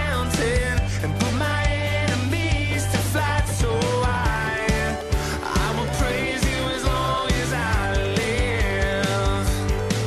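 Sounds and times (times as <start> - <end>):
pop-rock worship song: 0.0 - 10.0.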